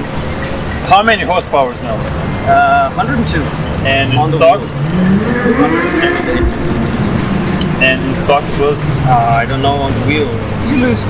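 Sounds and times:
birds chirping: 0:00.0 - 0:11.0
motorcycle engine revving: 0:02.0 - 0:11.0.

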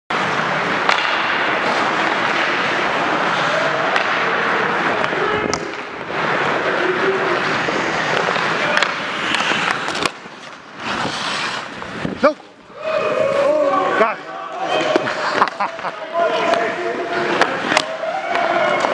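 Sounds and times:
hockey sticks and puck clacking: 0:00.1 - 0:12.7, 0:13.3 - 0:18.9
skates scraping on ice: 0:00.1 - 0:18.9.

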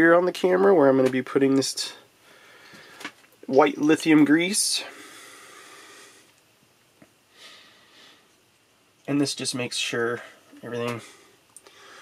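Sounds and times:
faint breathy hiss: 0:01.5 - 0:12.0.

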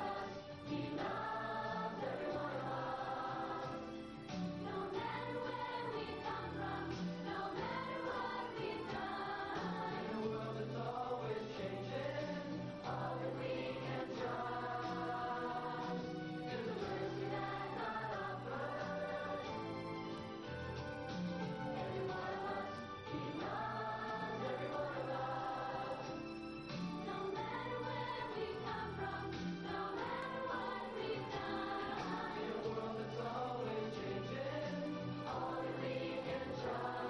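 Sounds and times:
youth choir singing: 0:00.0 - 0:19.9, 0:21.4 - 0:26.3, 0:27.0 - 0:37.0.

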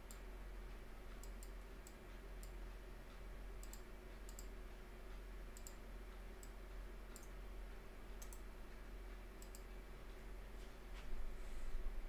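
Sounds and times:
steady low hum: 0:00.0 - 0:12.0
computer mouse clicks: 0:01.2 - 0:02.6, 0:03.6 - 0:04.6, 0:05.5 - 0:05.8, 0:06.4 - 0:07.4, 0:08.2 - 0:08.5, 0:09.4 - 0:09.7.

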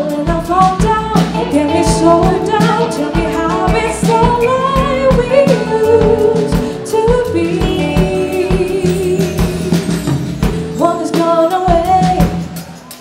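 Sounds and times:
woman singing: 0:00.0 - 0:12.7
live soul band playing: 0:00.0 - 0:13.0
drum hits: 0:00.8 - 0:08.8.

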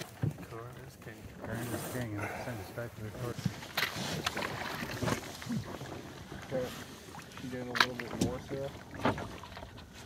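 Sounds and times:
water rushing along hull: 0:00.0 - 0:10.0.

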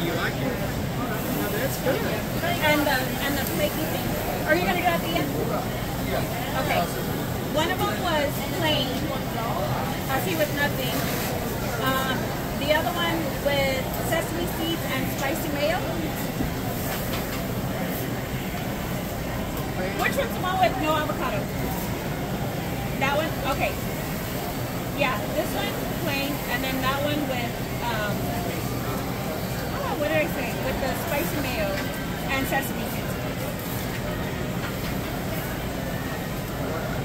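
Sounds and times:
steady background noise: 0:00.0 - 0:37.0.

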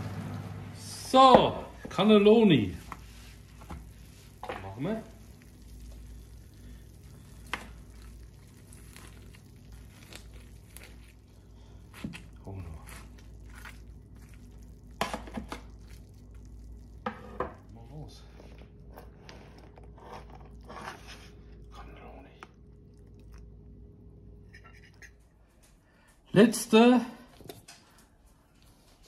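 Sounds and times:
crunching baked cheese crust: 0:02.9 - 0:23.7.

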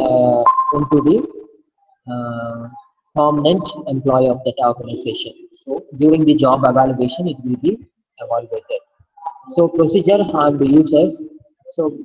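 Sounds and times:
man speaking: 0:00.0 - 0:01.5, 0:02.1 - 0:12.0
man saying uhh: 0:02.1 - 0:04.0.

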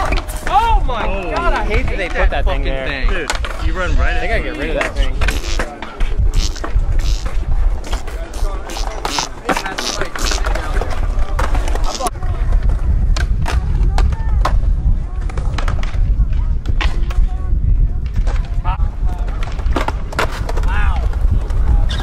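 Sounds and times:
skateboard wheels rolling on concrete: 0:00.0 - 0:22.0
skateboard clacking on ground: 0:03.0 - 0:03.7, 0:04.5 - 0:22.0.

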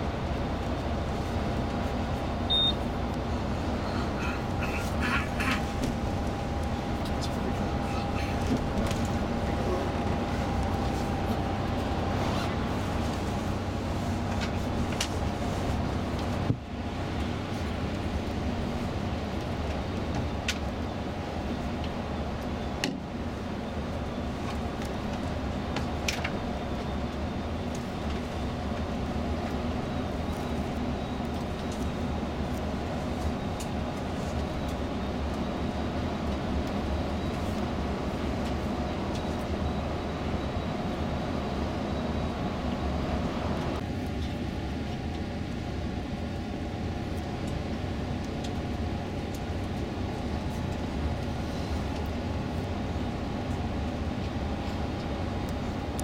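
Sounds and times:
coach road and engine noise: 0:00.0 - 0:56.0.

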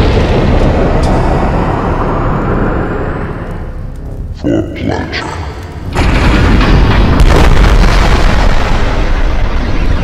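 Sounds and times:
deep explosion rumble: 0:00.0 - 0:04.4, 0:05.7 - 0:10.0.

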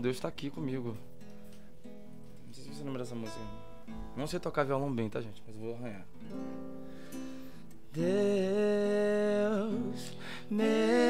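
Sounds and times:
acoustic guitar strumming: 0:00.3 - 0:11.0.

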